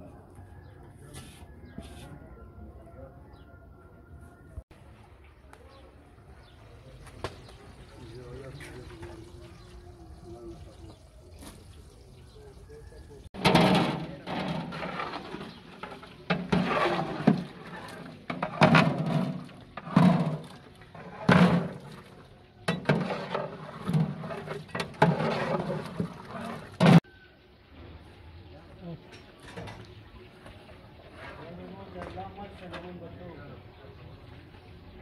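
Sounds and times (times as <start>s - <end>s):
man talking: 7.9s - 11.1s.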